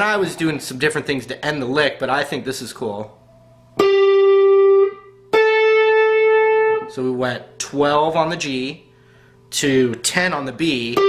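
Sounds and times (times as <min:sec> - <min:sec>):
electric guitar picked notes: 0:03.8 - 0:07.0.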